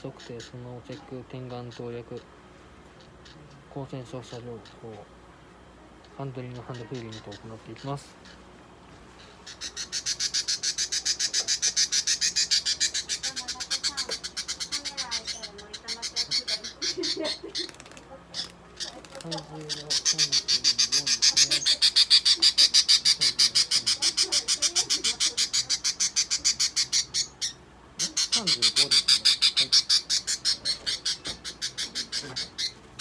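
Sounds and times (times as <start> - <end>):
budgerigar squawking: 0.0 - 2.3, 6.3 - 8.5, 9.2 - 33.0.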